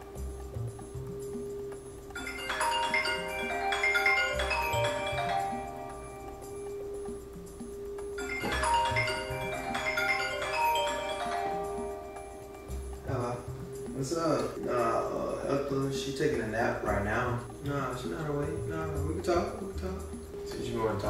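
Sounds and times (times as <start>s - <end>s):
marimba-like melody with bass: 0.0s - 21.0s.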